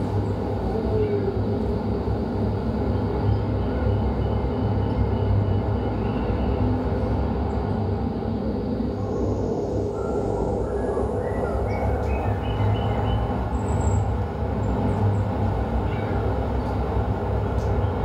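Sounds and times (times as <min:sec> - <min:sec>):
road traffic rumble: 0:00.0 - 0:18.0.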